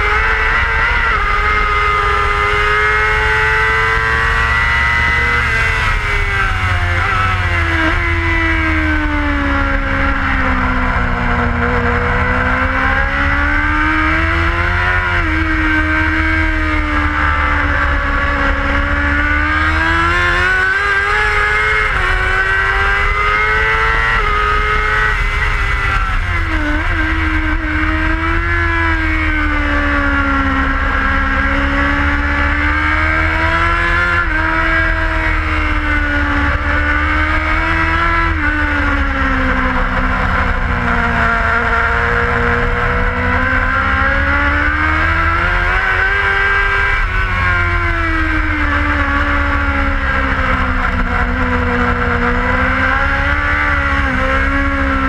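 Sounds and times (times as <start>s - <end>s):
racing motorcycle engine revving: 0.0s - 55.0s.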